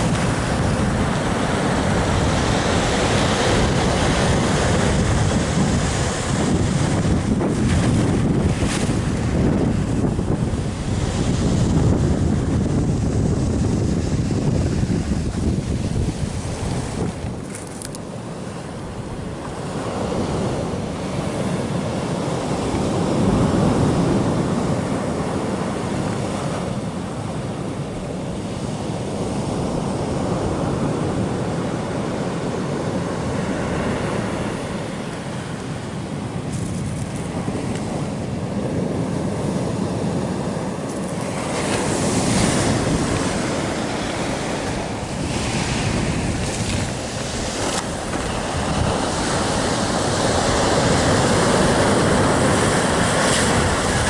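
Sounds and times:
surf washing up gravel beach: 0:00.0 - 0:54.0.

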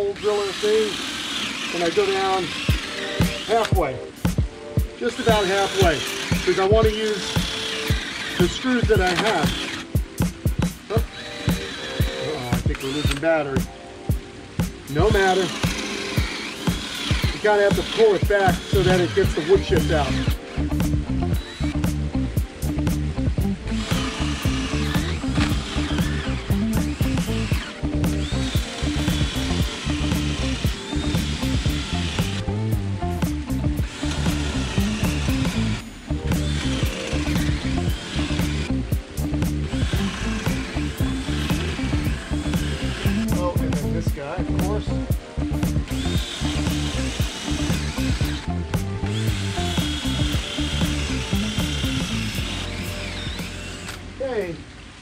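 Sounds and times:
cordless drill boring into wood: 0:00.0 - 0:04.0, 0:05.0 - 0:13.6, 0:14.6 - 0:21.9, 0:23.7 - 0:32.5, 0:33.4 - 0:38.8, 0:39.6 - 0:43.5, 0:45.8 - 0:54.2
background music with steady beat: 0:01.4 - 0:54.2.

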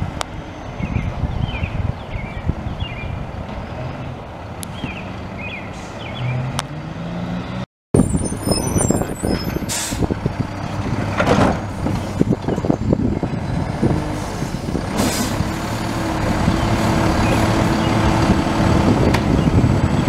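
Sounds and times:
diesel truck engine: 0:00.0 - 0:20.0.

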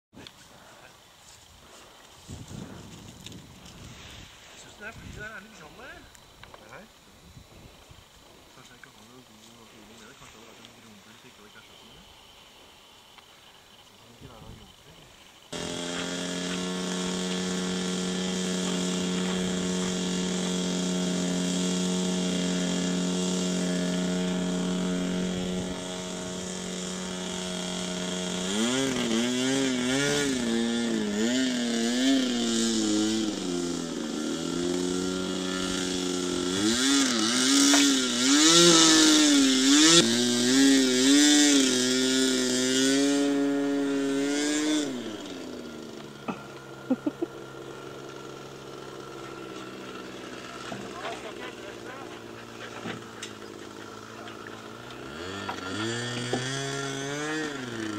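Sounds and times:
model plane engine revving: 0:15.5 - 0:57.9.

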